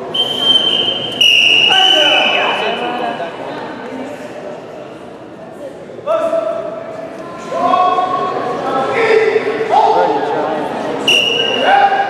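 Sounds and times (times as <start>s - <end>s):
spectators talking and shouting: 0.0s - 12.0s
high-pitched whistle blast: 0.1s - 2.7s, 11.1s - 11.7s.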